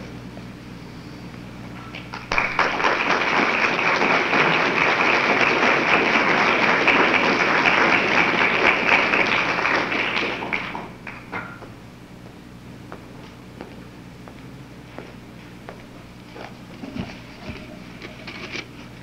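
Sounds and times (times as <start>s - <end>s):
audience applauding: 2.0s - 11.3s.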